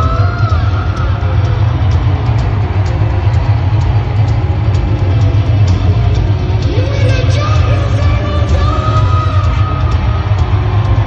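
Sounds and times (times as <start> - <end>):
drums: 0.0 - 11.0
hard rock band playing: 0.0 - 11.0
heavy bass guitar: 0.0 - 11.0.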